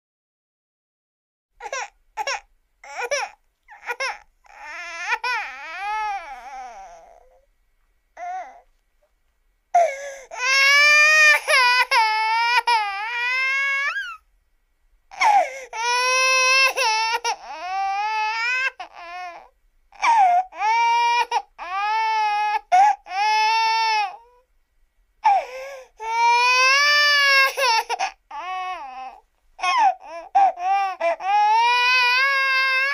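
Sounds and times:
infant crying: 0:01.6 - 0:07.5, 0:08.2 - 0:08.7, 0:09.8 - 0:14.2, 0:15.1 - 0:24.5, 0:25.2 - 0:32.9.

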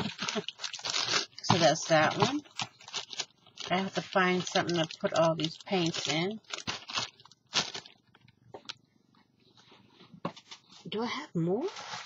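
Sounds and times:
plastic bag rustling: 0:00.0 - 0:08.3.

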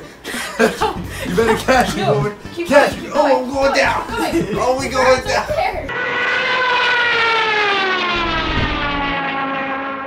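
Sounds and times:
descending airliner whine: 0:05.5 - 0:10.0.

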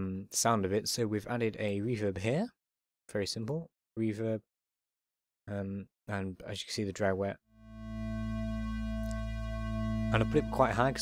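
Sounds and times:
synth pad holding low note: 0:07.6 - 0:11.0.

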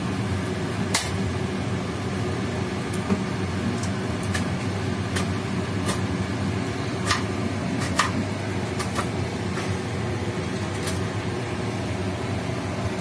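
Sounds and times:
steady hum: 0:00.0 - 0:13.0
hot oil popping and crackling: 0:00.1 - 0:09.7, 0:10.4 - 0:11.2.

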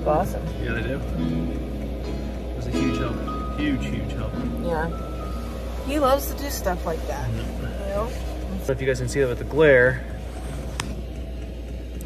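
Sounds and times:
air heater humming: 0:00.0 - 0:12.0.

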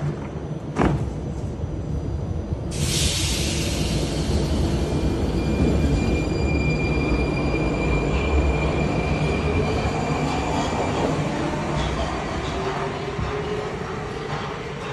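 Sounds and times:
metro train rumble: 0:00.0 - 0:14.9.

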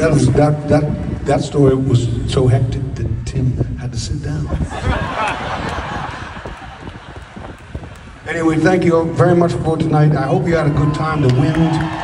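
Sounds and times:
audience laughing: 0:04.5 - 0:07.8
scattered hand claps: 0:05.6 - 0:08.2.

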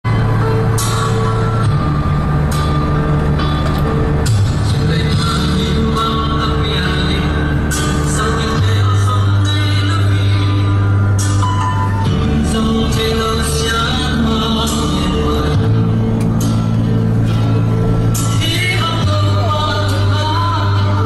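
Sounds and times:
music with held bass notes: 0:00.0 - 0:21.0.

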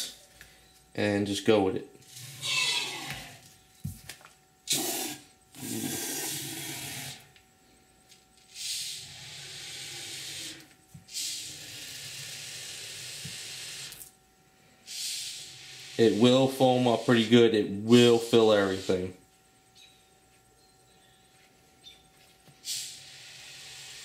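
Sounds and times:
expanding foam spraying: 0:14.9 - 0:17.4.

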